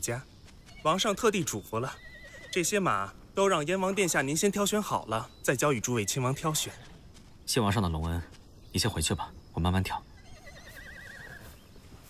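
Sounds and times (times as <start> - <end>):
horse whinnying: 1.8 - 2.8, 10.2 - 11.6.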